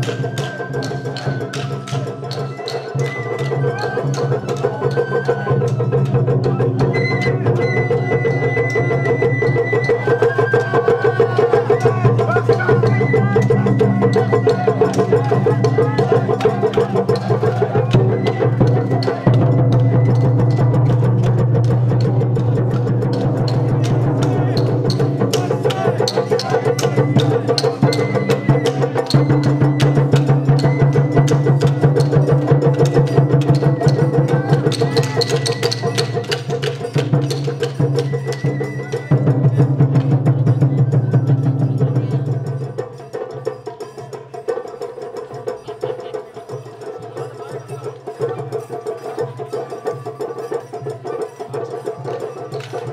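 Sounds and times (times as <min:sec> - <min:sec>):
fast dense drum strokes: 0:13.6 - 0:35.2.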